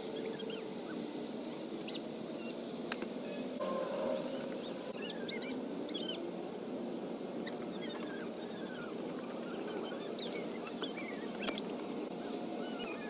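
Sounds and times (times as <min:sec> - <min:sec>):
small birds chirping: 0:00.0 - 0:03.6, 0:04.2 - 0:06.3, 0:07.3 - 0:13.0
low outdoor hum: 0:00.0 - 0:13.0.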